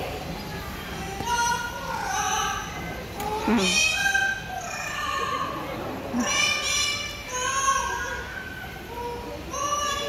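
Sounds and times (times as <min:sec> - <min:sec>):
parrot calling over loudspeakers: 0:01.2 - 0:02.8, 0:03.4 - 0:05.6, 0:06.2 - 0:10.0.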